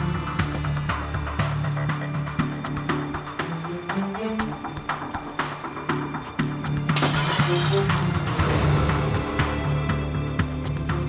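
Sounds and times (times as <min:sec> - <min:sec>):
dramatic background music: 0:00.0 - 0:11.0
glass window shattering: 0:06.9 - 0:08.6.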